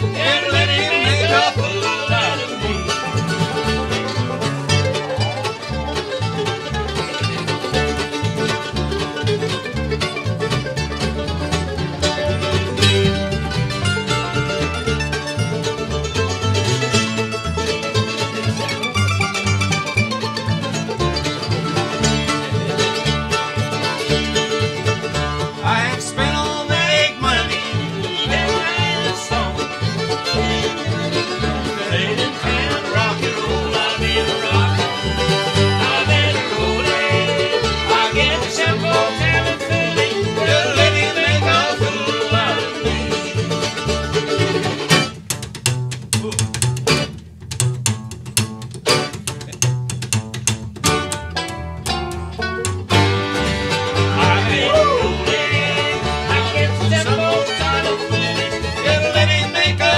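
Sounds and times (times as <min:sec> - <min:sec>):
fiddle: 0:00.0 - 0:45.8, 0:46.6 - 0:59.9
acoustic guitar: 0:00.0 - 0:59.9
banjo: 0:00.0 - 0:59.9
mandolins: 0:00.0 - 0:59.9
upright bass: 0:00.0 - 0:59.9.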